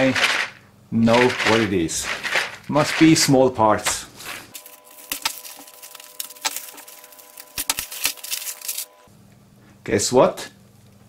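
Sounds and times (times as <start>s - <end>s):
plastic bag crinkling: 0.0s - 3.4s, 4.4s - 8.9s.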